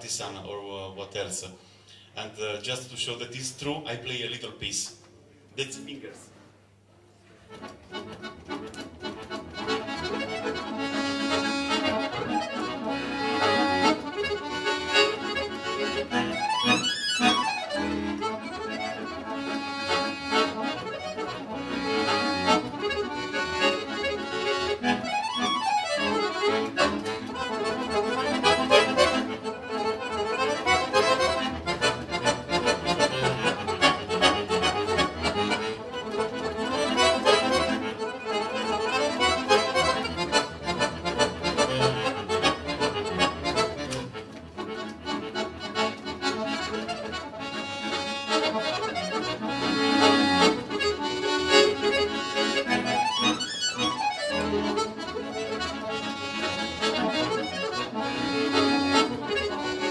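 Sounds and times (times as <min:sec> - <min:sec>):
accordion playing fast piece: 0:07.5 - 0:59.9.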